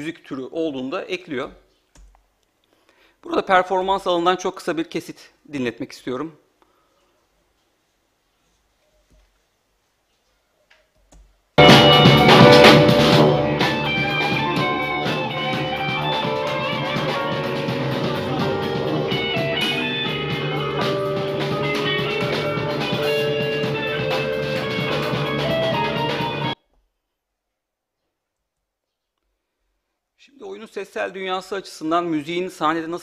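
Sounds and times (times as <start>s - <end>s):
drum beat: 11.6s - 26.6s
electric guitar: 11.6s - 26.6s
keyboard: 11.6s - 26.6s.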